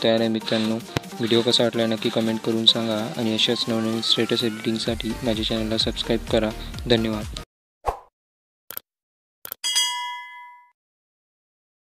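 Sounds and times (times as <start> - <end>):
notification bell ding: 9.6 - 10.8.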